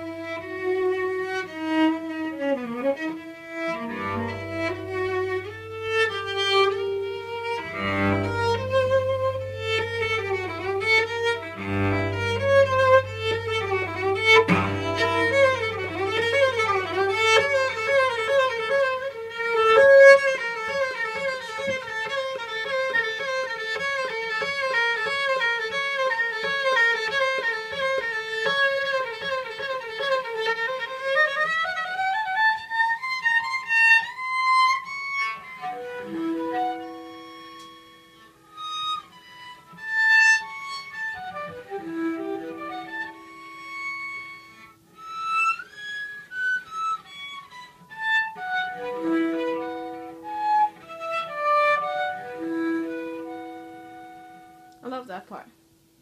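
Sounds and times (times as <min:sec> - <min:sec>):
bowed cello: 0:00.0 - 0:55.4.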